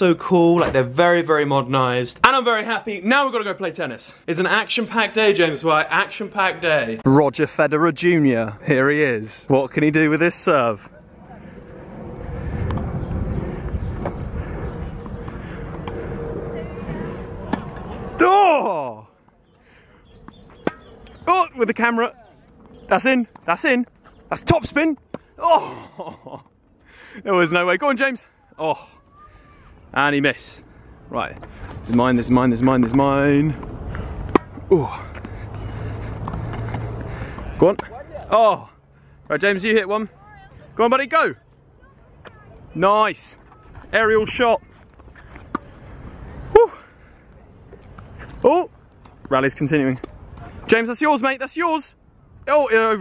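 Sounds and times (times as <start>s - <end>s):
wind rumble on microphone: 11.1s - 18.2s
tennis ball bouncing: 17.4s - 17.9s, 20.2s - 20.9s, 33.6s - 38.3s, 45.4s - 45.7s
racket striking tennis ball: 17.5s - 17.8s, 20.3s - 20.9s, 34.3s - 34.6s
tennis racket striking ball: 34.3s - 34.6s.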